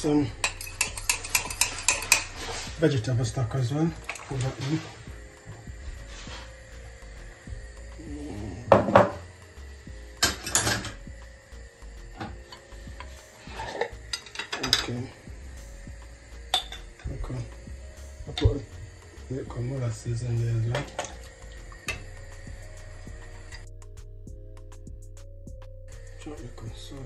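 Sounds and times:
spoon clinking on frying pan: 0.4 - 2.3, 16.5 - 17.0.

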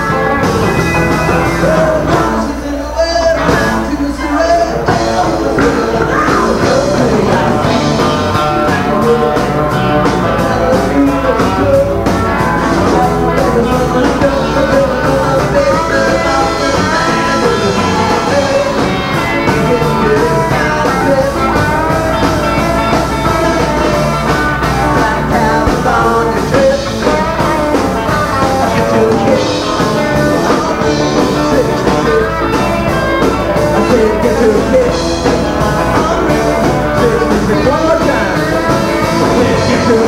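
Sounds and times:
drum kit beat: 0.0 - 40.0
rock band playing live: 0.0 - 40.0.

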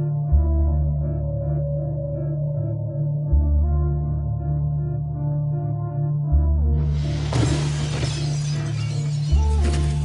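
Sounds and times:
glass window shattering: 7.1 - 10.0.

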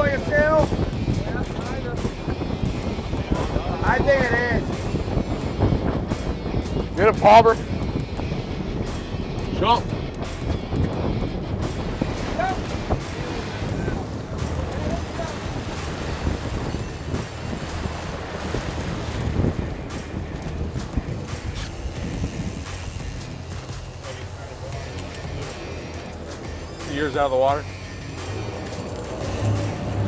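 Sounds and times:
boat engines running low: 0.0 - 30.0
water rushing along boat hull: 0.0 - 30.0
wind buffeting microphone: 0.0 - 30.0.

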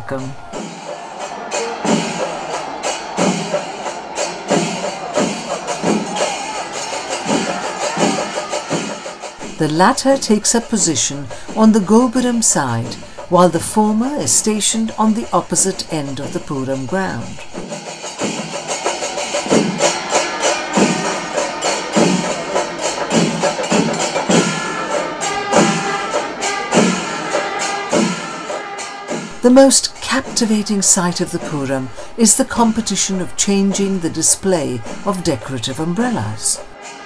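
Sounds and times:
horns swooping calls: 0.0 - 11.6, 19.0 - 37.0
drums and cymbals beat: 0.0 - 37.0.

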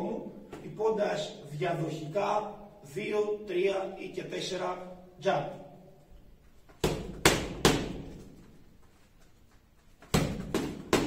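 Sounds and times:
boxing glove slapping focus mitt: 6.7 - 8.5, 10.0 - 11.0.

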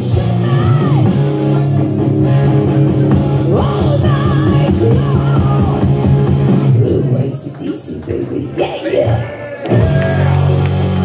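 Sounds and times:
electric guitar: 0.0 - 7.2
drums: 0.0 - 7.9, 9.0 - 11.0
bass guitar: 0.0 - 11.0.

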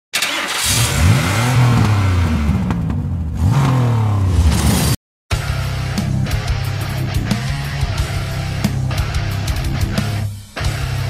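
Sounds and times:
car engine revving: 0.2 - 5.0.

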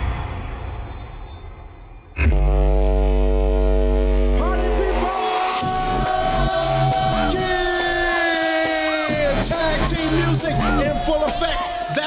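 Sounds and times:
deep horn-like drone: 2.2 - 8.2
electronic dance music: 3.2 - 12.0.

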